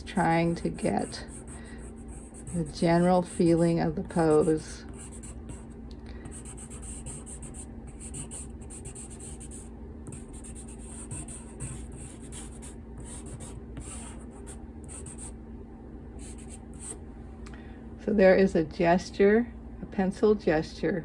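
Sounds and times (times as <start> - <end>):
pencil scratching on paper: 0.2 - 15.3, 16.2 - 17.0.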